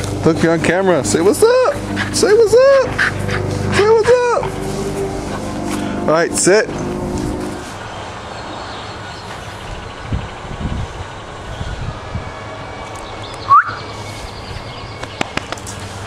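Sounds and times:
steady low hum: 0.0 - 8.1.

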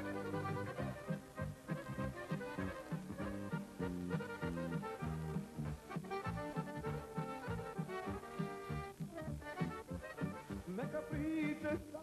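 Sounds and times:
folk band playing: 0.0 - 12.0.

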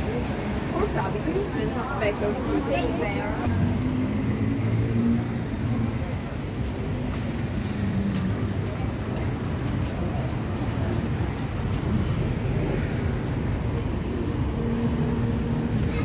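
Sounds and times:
passersby voices: 0.0 - 16.0
vehicles passing on street: 0.0 - 16.0.

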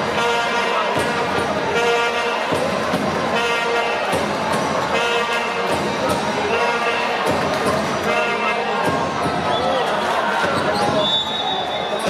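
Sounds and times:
voices in an arena: 0.0 - 12.0
basketball bouncing: 2.4 - 3.4, 4.0 - 6.5.

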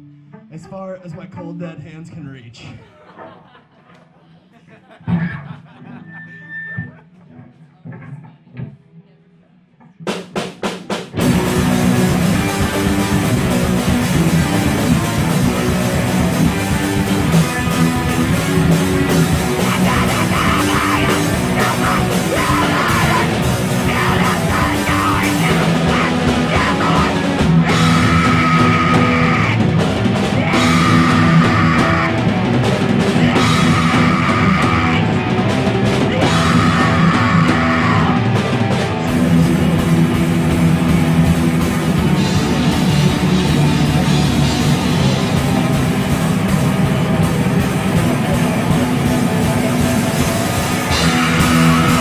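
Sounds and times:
drum kit: 9.8 - 52.0
loud rock band playing live: 10.3 - 52.0
electric guitar: 11.2 - 52.0
screamed vocals: 19.1 - 32.5, 33.1 - 35.3, 36.1 - 38.4, 50.8 - 52.0.

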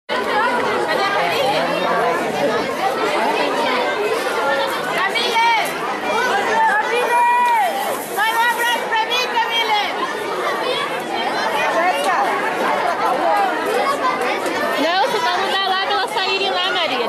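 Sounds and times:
children's voices chattering: 0.1 - 17.0.

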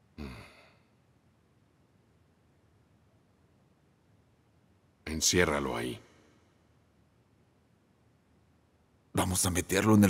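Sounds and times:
man sighing: 0.1 - 0.8.

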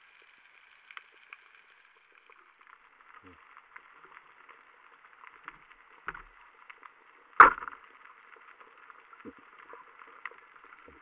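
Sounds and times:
underwater crackling and ticking: 0.0 - 11.0
sharp knock: 7.4 - 7.7.

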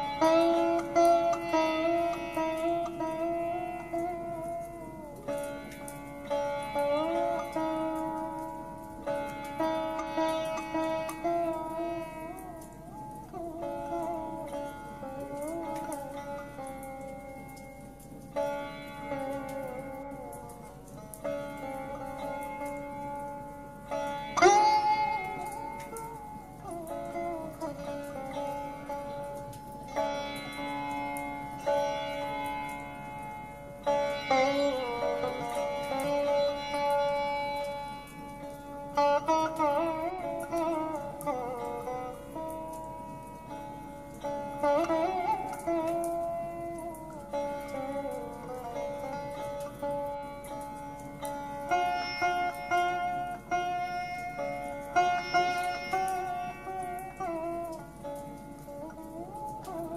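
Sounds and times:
sitar music: 0.0 - 59.9.

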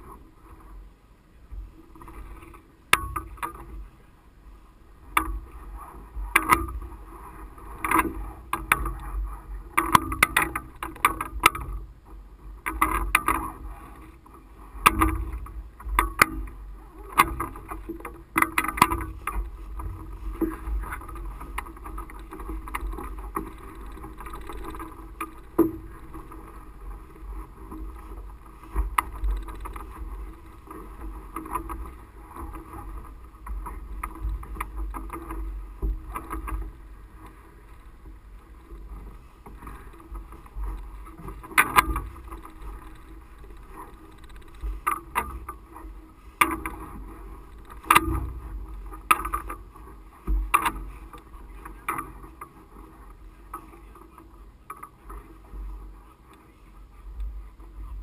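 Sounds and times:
wind rumble on camera: 0.0 - 58.0.

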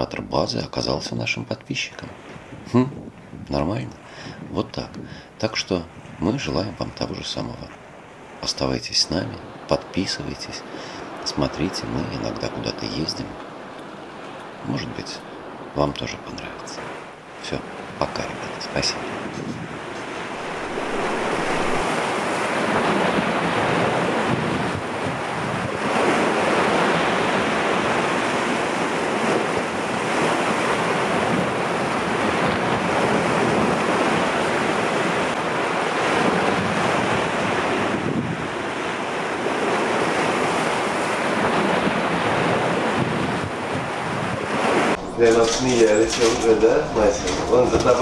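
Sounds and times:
surf washing over rocks: 3.5 - 48.0.

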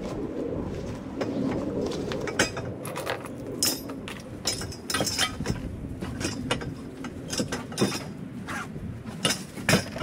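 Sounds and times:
metal tubes clinking: 2.3 - 8.2.

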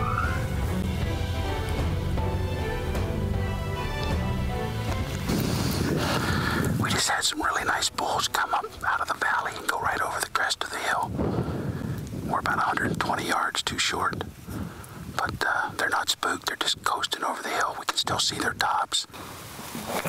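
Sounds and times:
man whispering: 6.6 - 11.2, 12.2 - 14.4, 15.1 - 19.2.

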